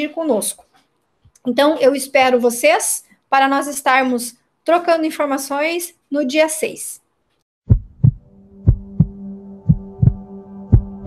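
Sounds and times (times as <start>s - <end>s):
heartbeat thumps: 7.7s - 11.0s
low hum droning: 8.1s - 11.0s.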